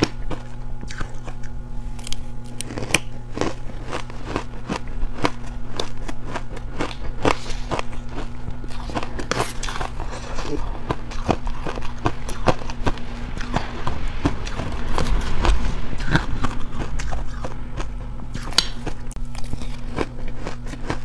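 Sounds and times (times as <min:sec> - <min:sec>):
crunching and chewing ice: 0:00.0 - 0:21.0
steady low hum: 0:00.0 - 0:21.0.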